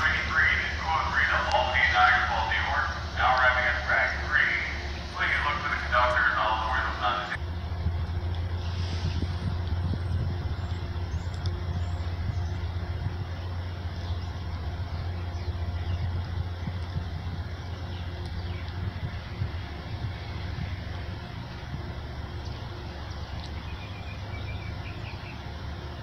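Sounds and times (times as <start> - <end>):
person talking: 0.0 - 7.4
low rumble: 0.0 - 26.0.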